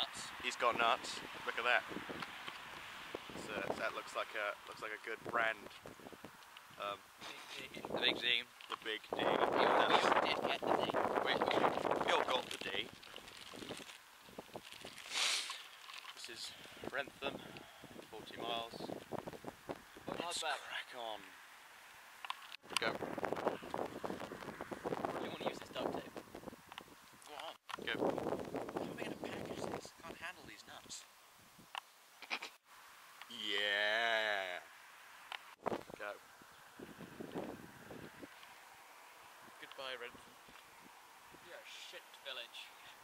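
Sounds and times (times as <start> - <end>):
plastic snack packet crinkling: 11.6 - 16.3.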